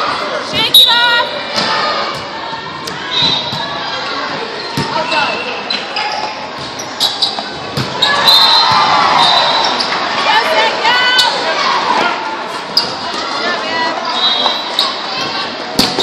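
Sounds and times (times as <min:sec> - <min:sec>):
people calling out: 0:00.5 - 0:02.2, 0:08.0 - 0:12.2
sneakers squeaking on floor: 0:02.9 - 0:10.2, 0:12.7 - 0:13.0, 0:14.0 - 0:16.0
volleyball being struck: 0:15.8 - 0:16.0.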